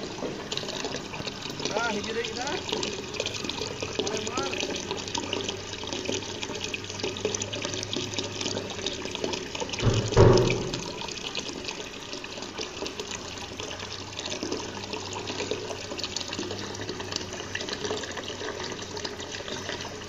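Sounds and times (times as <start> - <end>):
water pouring into pond: 0.0 - 20.0
deep splash: 9.8 - 11.2.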